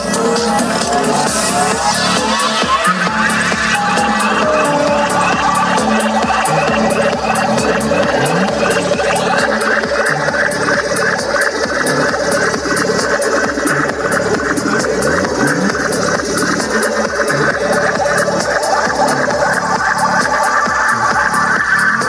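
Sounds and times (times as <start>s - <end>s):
electronic dance music over speakers: 0.0s - 22.0s.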